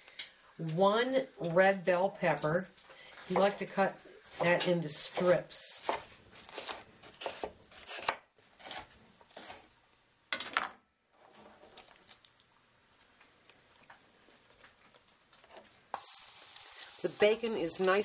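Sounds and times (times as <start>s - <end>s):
knife slicing pepper on cutting board: 4.4s - 9.6s
bacon sizzling in a pan: 15.9s - 18.0s.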